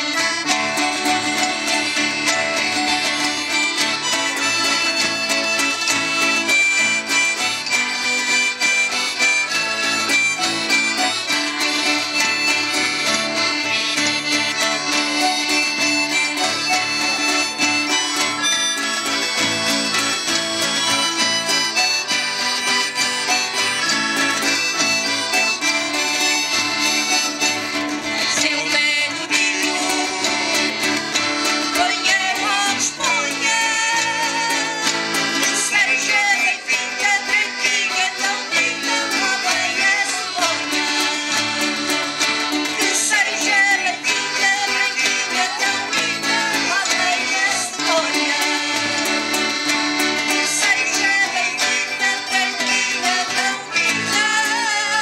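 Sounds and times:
accordion playing tune: 0.0 - 55.0
strummed acoustic guitars: 0.0 - 55.0.

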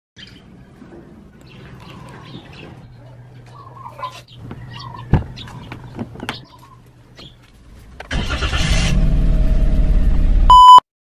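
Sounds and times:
birds chirping: 0.2 - 8.0.

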